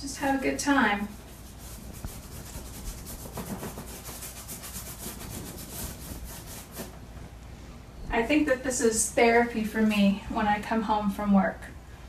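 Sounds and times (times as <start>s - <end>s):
brush scrubbing paint on canvas: 0.1s - 7.0s.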